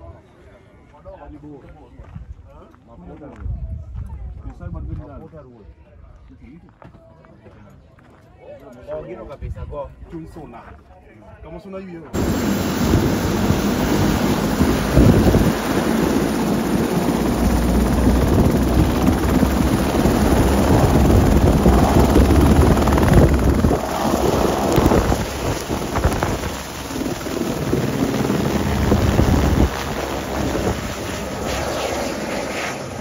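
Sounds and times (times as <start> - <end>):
helicopter engine and rotor: 12.2 - 33.0
wind buffeting microphone: 12.2 - 33.0.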